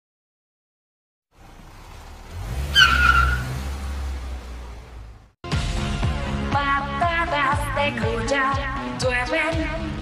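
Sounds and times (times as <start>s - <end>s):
car engine hum: 1.3s - 5.4s
tyre squeal: 2.7s - 3.6s.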